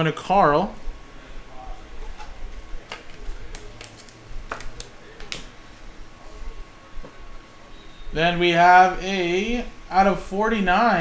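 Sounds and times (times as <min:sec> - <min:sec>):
low room hum: 0:00.0 - 0:11.0
cards clicking and tapping: 0:02.8 - 0:05.5.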